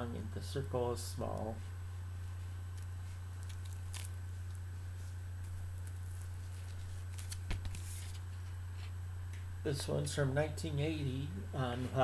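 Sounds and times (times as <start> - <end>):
steady low hum: 0.0 - 12.0
record jackets rustling: 0.6 - 9.0.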